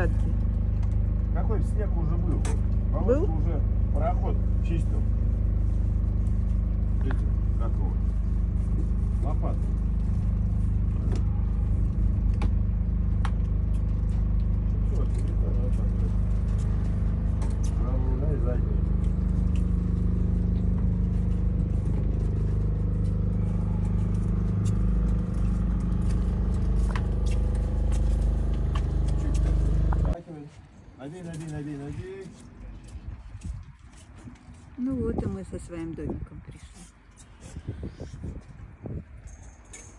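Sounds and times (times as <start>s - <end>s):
boat motor droning: 0.0s - 30.2s.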